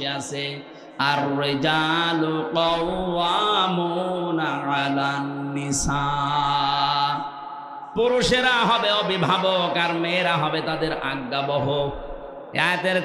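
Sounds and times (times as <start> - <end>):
man chanting recitation: 0.0 - 13.0.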